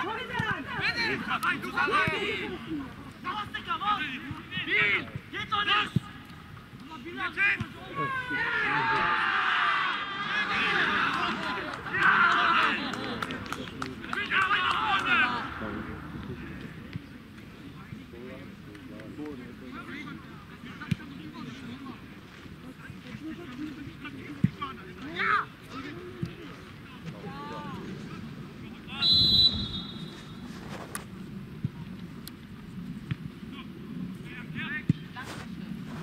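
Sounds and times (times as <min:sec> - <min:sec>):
young men shouting excitedly: 0:07.2 - 0:12.8
referee's whistle blast: 0:29.0 - 0:30.4.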